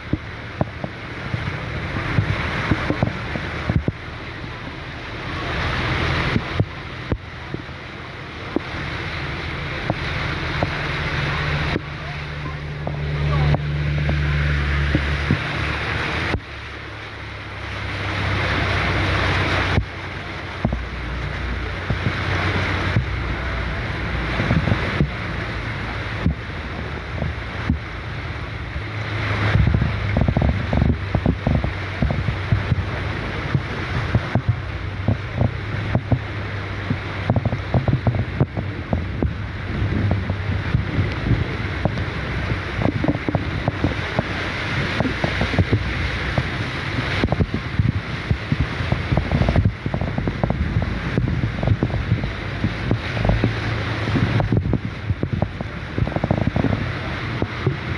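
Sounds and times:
heavy rain: 0.0 - 57.9
low engine hum: 0.0 - 57.9
water splashing against car: 0.0 - 57.9
small splashes and knocks: 8.4 - 28.0.

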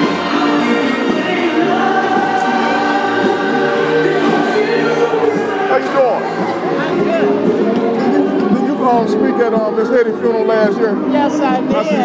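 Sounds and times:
choir singing long held notes: 0.0 - 10.1.

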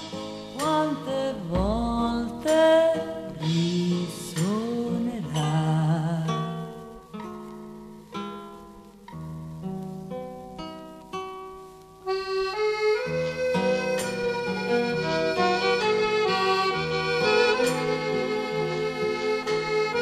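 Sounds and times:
instrumental band chords: 0.0 - 5.6, 12.0 - 20.0.

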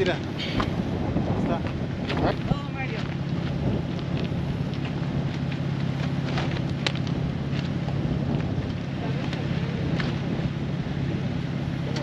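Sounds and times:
car engine running: 0.0 - 12.0
wind buffeting microphone: 0.0 - 12.0.

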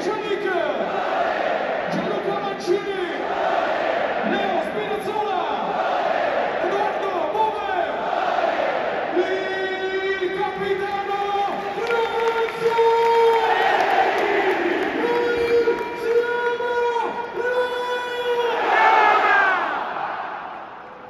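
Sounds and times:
stadium crowd chanting: 0.0 - 17.4, 18.2 - 21.0
crowd cheering: 0.0 - 21.0.

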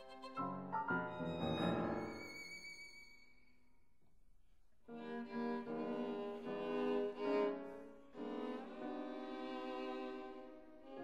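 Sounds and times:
violin and viola bowed notes: 0.0 - 3.3.

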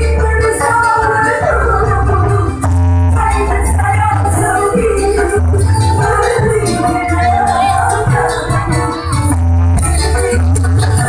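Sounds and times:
live dance music through pa: 0.0 - 11.0.

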